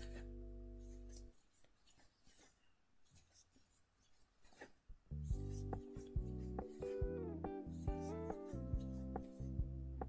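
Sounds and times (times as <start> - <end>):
crochet hook scratching yarn: 0.0 - 7.0, 7.6 - 9.6.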